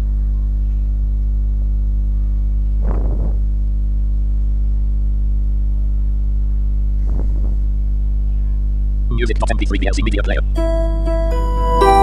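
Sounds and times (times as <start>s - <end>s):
mains hum: 0.0s - 12.0s
bursts of voice: 9.1s - 10.5s.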